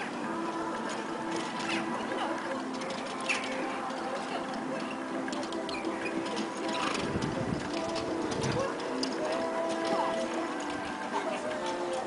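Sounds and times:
hooves clicking on sand: 0:00.7 - 0:12.0.

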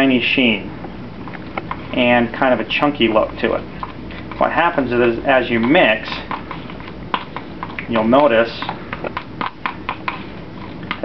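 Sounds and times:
spatula smacking wet mix in bowl: 0:00.8 - 0:11.0.

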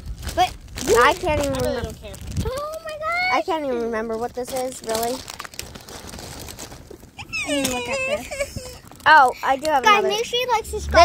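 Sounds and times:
packaging crinkling and rustling: 0:00.0 - 0:09.8
person speaking: 0:07.2 - 0:11.0.

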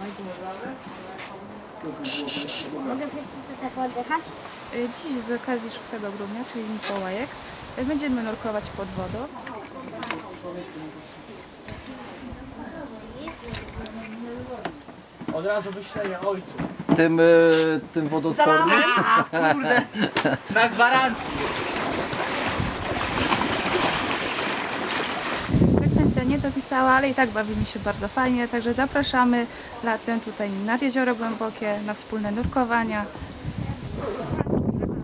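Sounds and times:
people talking in background: 0:00.0 - 0:20.4, 0:28.4 - 0:35.0
water sloshing around legs: 0:21.2 - 0:25.6.

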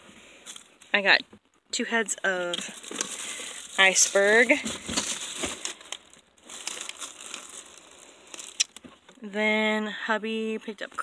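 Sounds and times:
plastic bag crinkling: 0:02.3 - 0:09.1.

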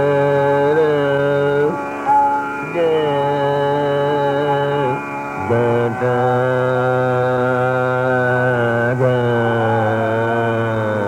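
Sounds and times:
man singing classical vocal: 0:00.0 - 0:01.9, 0:02.6 - 0:11.0
steady drone: 0:00.0 - 0:11.0.

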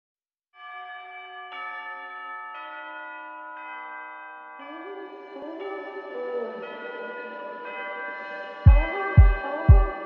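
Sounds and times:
bell-like synth tones over a pad: 0:02.6 - 0:10.0.

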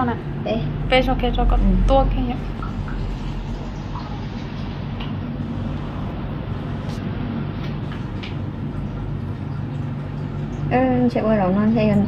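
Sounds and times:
dust collector fan whirring: 0:00.0 - 0:12.0.

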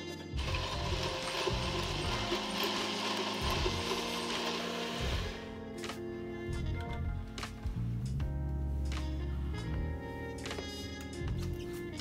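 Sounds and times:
blender motor running: 0:00.3 - 0:05.5.

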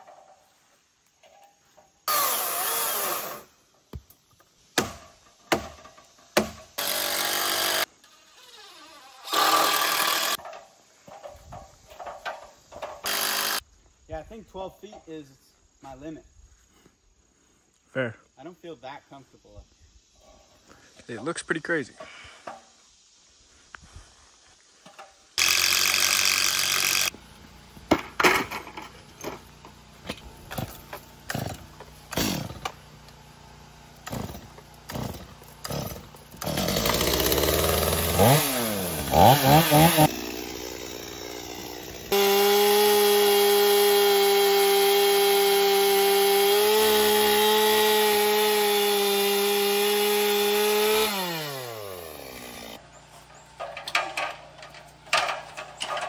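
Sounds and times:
chainsaw revving and cutting: 0:02.1 - 0:03.5, 0:06.8 - 0:07.9, 0:09.2 - 0:10.4, 0:13.1 - 0:13.6, 0:25.4 - 0:27.2, 0:30.4 - 0:32.8, 0:34.0 - 0:52.8.

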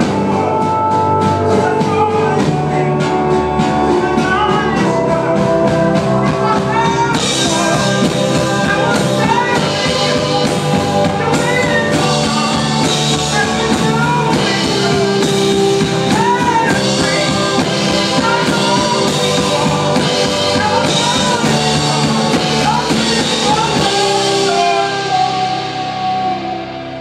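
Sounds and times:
live band music: 0:00.0 - 0:27.0
wordless vocals: 0:00.0 - 0:27.0.

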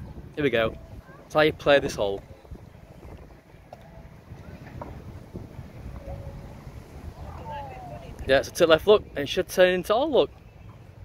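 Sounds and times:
faint distant high sounds: 0:00.0 - 0:11.0
wind buffeting microphone: 0:00.0 - 0:11.0.

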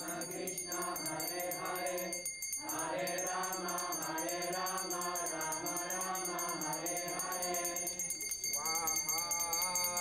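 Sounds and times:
group singing a chant: 0:00.0 - 0:10.0.

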